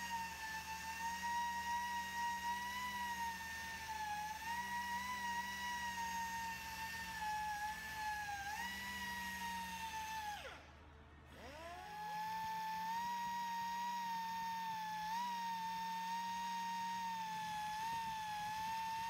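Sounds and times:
air polisher whine: 0:00.0 - 0:10.7, 0:11.3 - 0:19.0.

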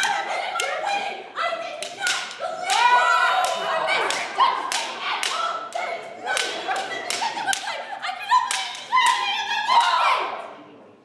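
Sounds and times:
sharp slaps: 0:01.8 - 0:07.8, 0:08.5 - 0:09.2.

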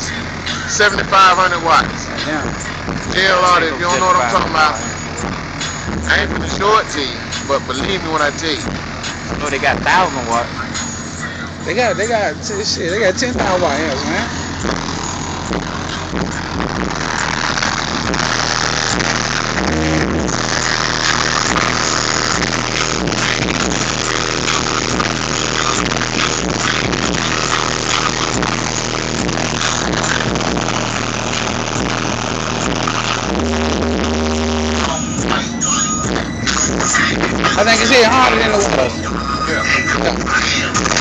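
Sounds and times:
bass-heavy music through subwoofers: 0:00.0 - 0:41.0.

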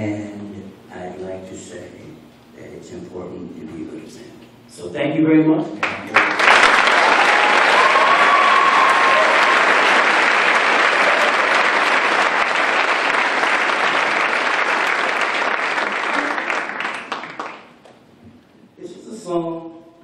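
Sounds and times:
audience applauding: 0:05.8 - 0:18.0
short cheer: 0:06.8 - 0:10.2.

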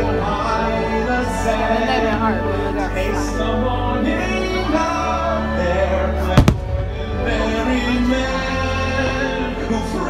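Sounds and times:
orchestral music: 0:06.2 - 0:10.0
firework bangs: 0:06.3 - 0:07.7.

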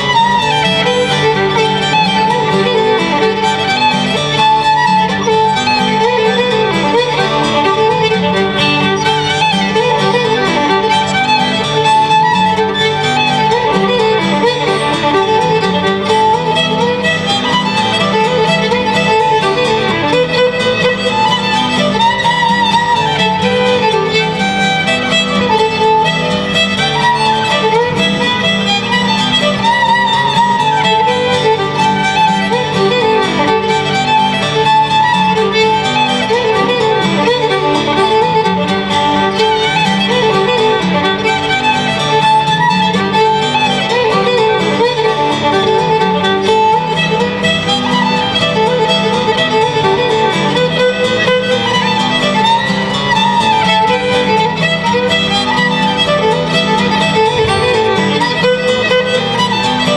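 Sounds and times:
acoustic guitar strumming: 0:00.0 - 0:59.9
fiddle bowing a melody: 0:00.0 - 0:59.9.

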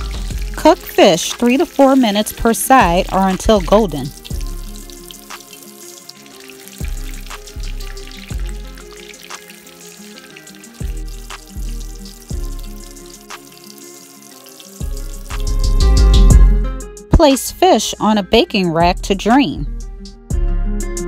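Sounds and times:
background music with bass line: 0:00.0 - 0:05.6, 0:06.8 - 0:13.6, 0:14.8 - 0:21.0
fish deep-frying in oil: 0:00.0 - 0:16.4.

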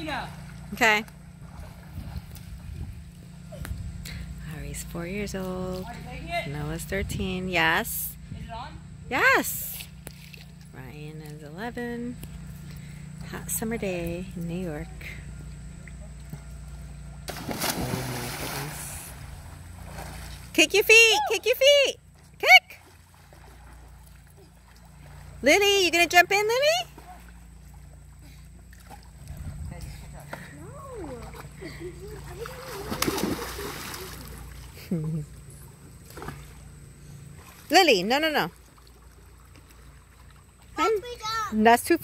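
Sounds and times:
steady low hum: 0:00.0 - 0:42.0
water churning: 0:17.0 - 0:29.6, 0:30.9 - 0:34.9, 0:35.5 - 0:41.4
splash into swimming pool: 0:17.3 - 0:20.5, 0:32.3 - 0:34.8.

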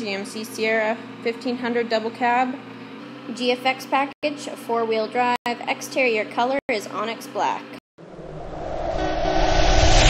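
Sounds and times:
rising whoosh with deep rumble: 0:08.0 - 0:10.0.

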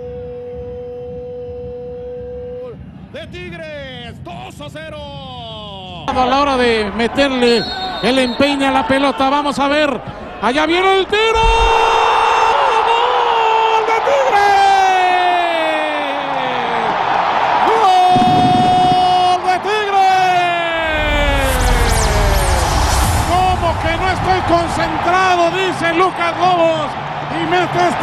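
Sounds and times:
stadium crowd noise: 0:00.0 - 0:28.0.

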